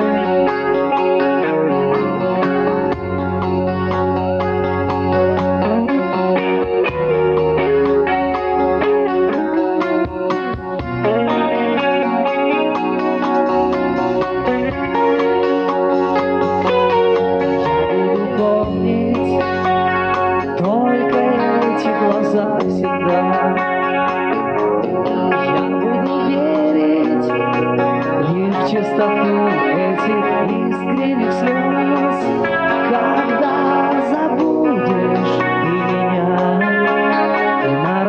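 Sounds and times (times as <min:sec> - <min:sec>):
bass guitar: 0:00.0 - 0:38.0
drums: 0:00.0 - 0:38.0
electric guitar melody with bent notes: 0:00.0 - 0:38.0.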